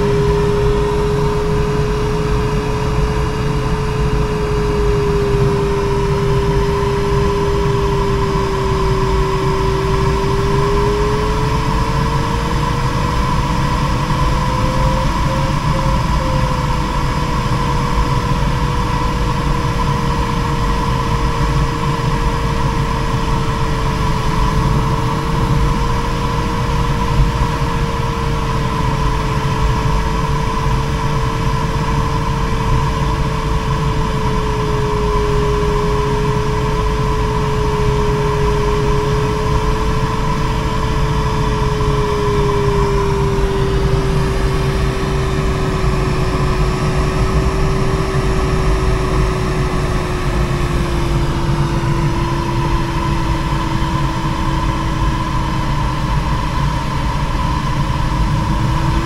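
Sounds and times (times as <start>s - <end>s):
glider airflow noise: 33.8s - 59.0s.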